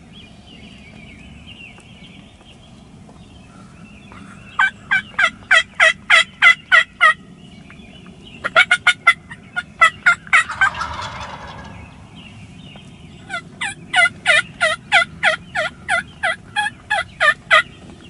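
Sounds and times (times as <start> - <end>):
turkey yelping: 8.5 - 12.1.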